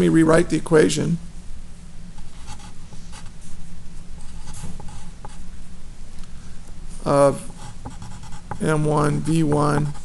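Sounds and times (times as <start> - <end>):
steady low hum: 0.0 - 10.0
pen scratching on paper: 2.4 - 3.3, 7.5 - 10.0.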